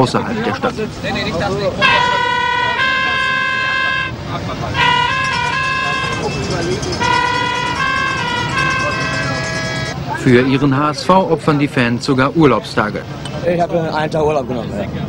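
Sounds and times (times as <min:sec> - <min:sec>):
horn playing a tune: 0:01.8 - 0:10.0.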